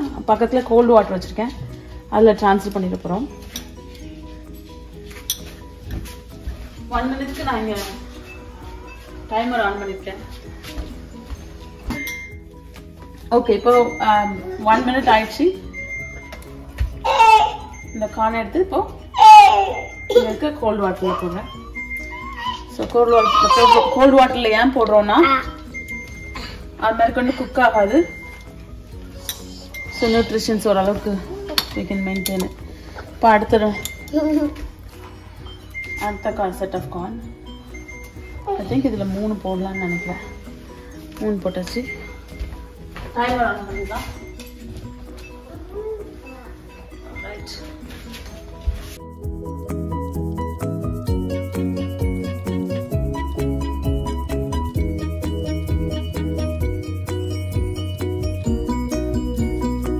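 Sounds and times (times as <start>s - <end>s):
soft background music: 0.0s - 59.9s
woman speaking: 6.9s - 8.1s, 9.3s - 10.3s, 13.3s - 15.7s, 20.1s - 21.6s, 22.7s - 25.3s, 29.9s - 32.6s, 33.2s - 33.9s, 36.0s - 37.2s, 38.5s - 40.4s, 41.2s - 42.1s, 43.2s - 44.2s, 47.0s - 47.8s
metal tongs clinking on pot: 29.2s - 29.9s.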